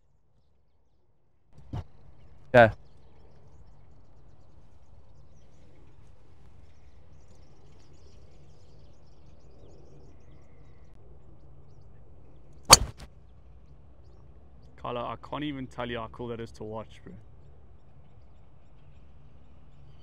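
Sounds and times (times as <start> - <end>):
outdoor background noise: 0.0 - 20.0
golf club striking ball: 12.7 - 13.1.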